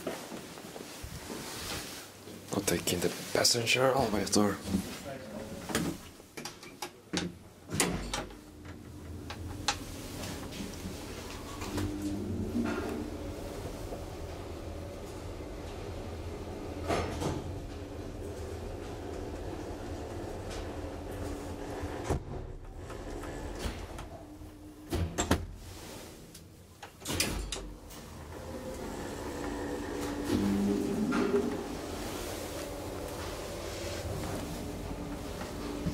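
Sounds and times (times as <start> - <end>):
elevator car humming: 7.8 - 25.0, 27.4 - 35.9.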